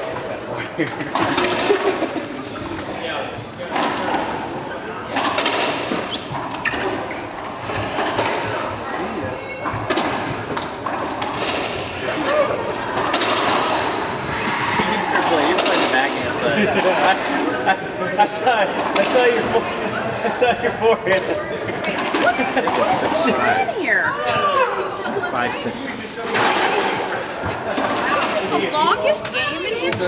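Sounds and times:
ball smacking racquets and walls: 5.2 - 8.6.

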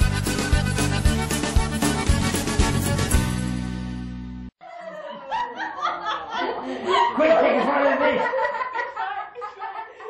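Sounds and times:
laughter and chuckling: 4.6 - 10.0.

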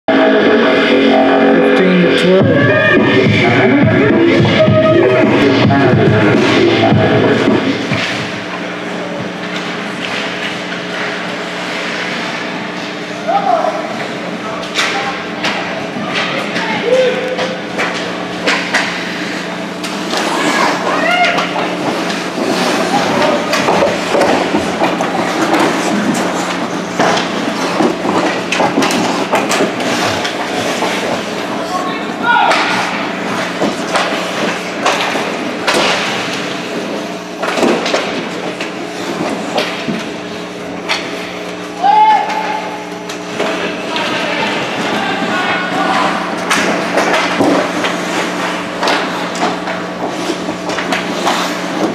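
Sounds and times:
steady background hum: 0.1 - 51.9
players and spectators shouting: 1.6 - 5.7, 20.2 - 21.8, 41.8 - 42.9, 43.9 - 46.4
sticks and puck knocking boards: 17.3 - 19.1, 19.8 - 31.5, 32.2 - 40.2, 43.3 - 51.9.

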